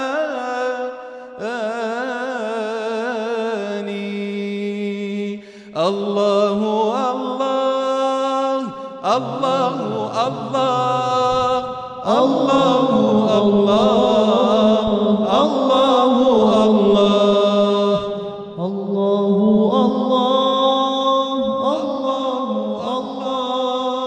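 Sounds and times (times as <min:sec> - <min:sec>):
man singing unaccompanied: 0:00.0 - 0:24.0.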